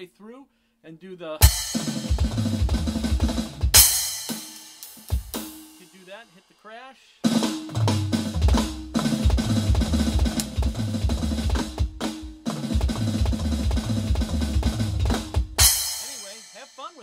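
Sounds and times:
electronic drum fill: 0:01.4 - 0:05.8, 0:07.3 - 0:16.9.

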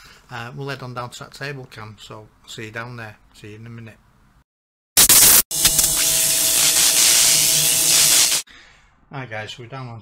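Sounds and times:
loud hissing: 0:05.0 - 0:08.5.

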